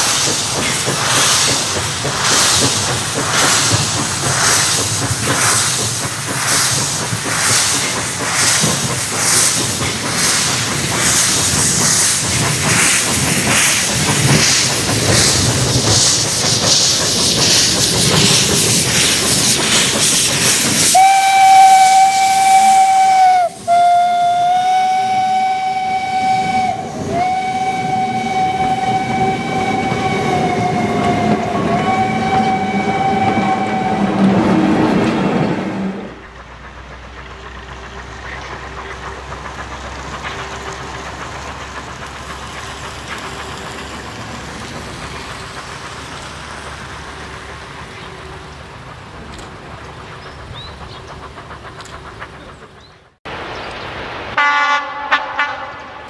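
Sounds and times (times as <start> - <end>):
steam hissing: 0.0 - 54.6
steam whistle: 20.9 - 34.8, 54.4 - 55.8.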